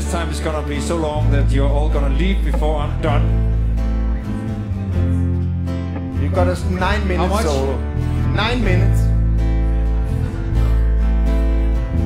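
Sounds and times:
bass notes: 0:00.0 - 0:12.0
strummed acoustic guitars: 0:00.0 - 0:12.0.

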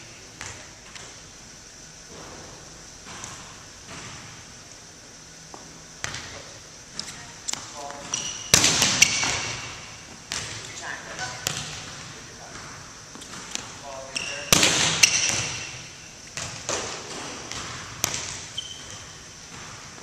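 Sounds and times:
ball bouncing on hardwood floor: 0:07.5 - 0:15.7, 0:16.4 - 0:20.0
volleyball struck hard: 0:08.5 - 0:09.7, 0:14.5 - 0:15.8.

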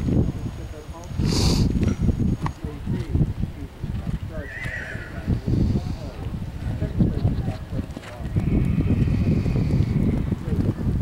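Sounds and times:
short hissing burst: 0:01.2 - 0:01.8
hoofbeats on sand: 0:03.9 - 0:11.0
horse whinnying: 0:04.3 - 0:06.1, 0:08.3 - 0:10.3.

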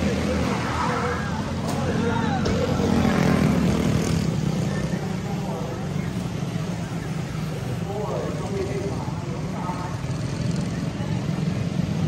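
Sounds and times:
voices in background: 0:00.0 - 0:12.0.

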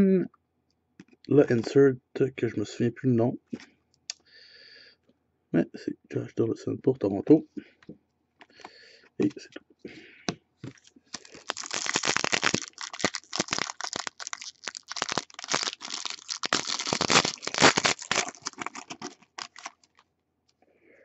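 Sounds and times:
foil wrapper crinkling and tearing: 0:10.8 - 0:20.0.

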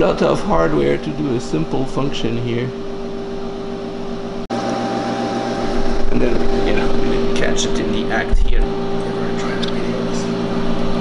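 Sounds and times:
electrical hum: 0:00.0 - 0:11.0
fan noise: 0:00.0 - 0:11.0.

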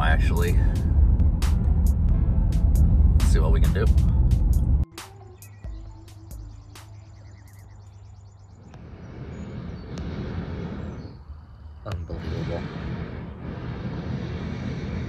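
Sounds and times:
propane burner roaring: 0:00.0 - 0:04.6, 0:08.4 - 0:15.0
car cabin road rumble: 0:00.0 - 0:04.8.

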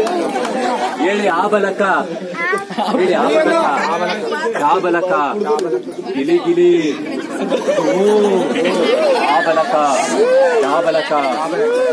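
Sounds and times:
children chattering: 0:00.0 - 0:11.9.

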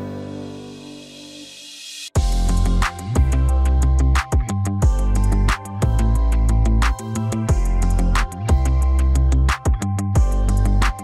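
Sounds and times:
music with steady beat and bass: 0:00.0 - 0:11.0.

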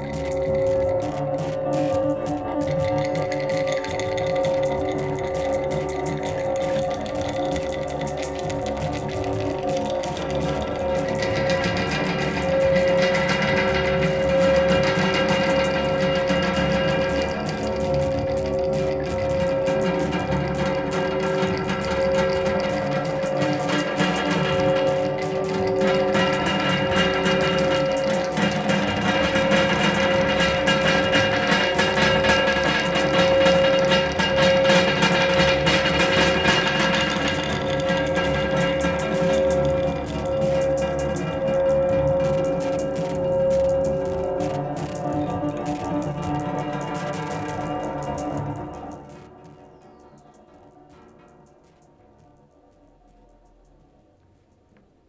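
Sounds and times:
scratchy rattling texture: 0:00.0 - 0:50.4.

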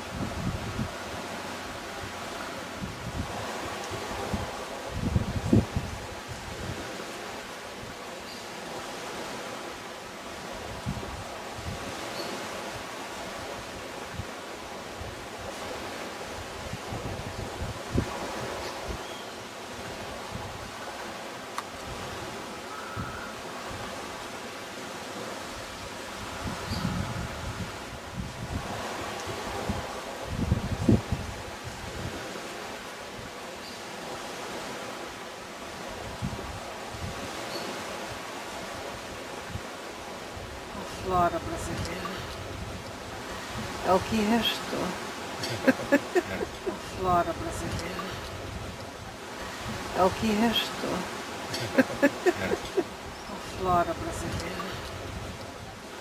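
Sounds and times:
wind buffeting microphone: 0:00.0 - 0:08.0, 0:10.2 - 0:24.4, 0:25.2 - 0:33.4, 0:35.8 - 0:44.3, 0:45.4 - 0:50.4, 0:51.5 - 0:56.0
leaves rustling: 0:00.0 - 0:56.0
wind: 0:00.0 - 0:56.0.

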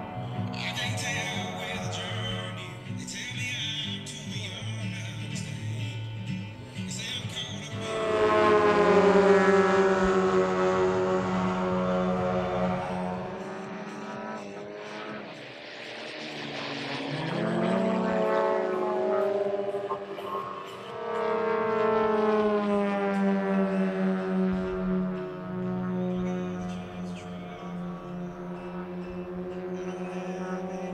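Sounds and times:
model aircraft engines droning: 0:00.0 - 0:30.9.

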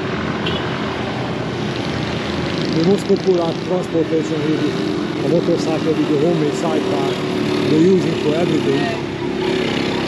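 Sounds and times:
scooter and motorcycle engines: 0:00.0 - 0:10.0.

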